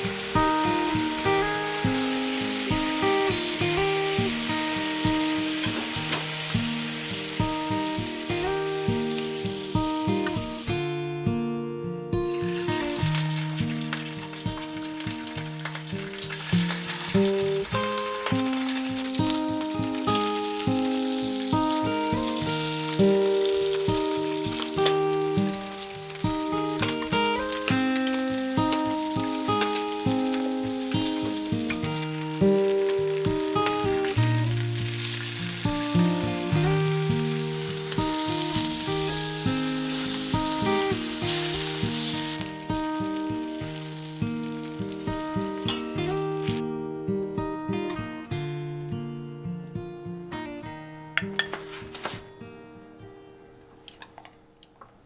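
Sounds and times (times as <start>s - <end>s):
fish sizzling in a frying pan: 0.0s - 10.6s, 12.2s - 46.6s
background music of held notes: 0.0s - 10.7s, 12.2s - 46.6s.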